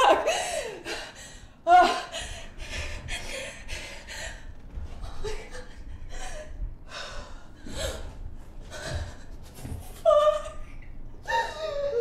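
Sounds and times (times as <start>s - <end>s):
low rumble: 2.3s - 11.3s.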